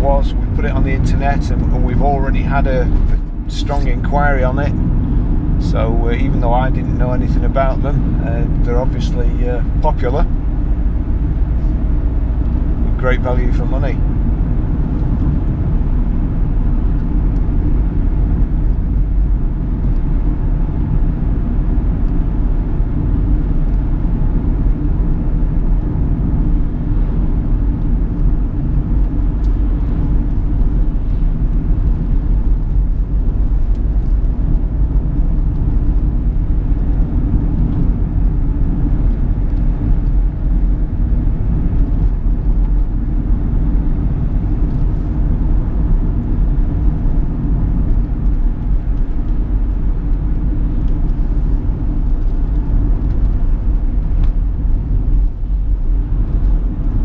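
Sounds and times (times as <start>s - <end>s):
car engine and tyre noise: 0.0s - 57.0s.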